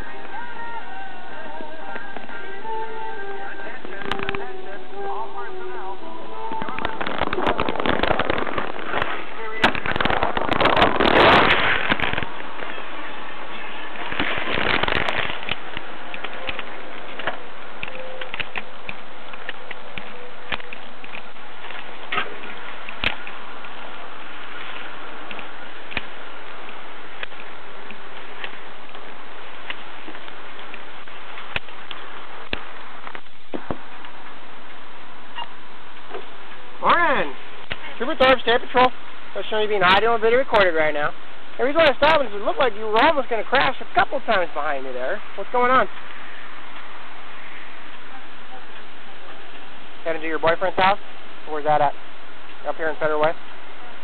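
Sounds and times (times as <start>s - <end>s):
loud crackling static: 0.0s - 54.0s
steady hiss: 0.0s - 54.0s.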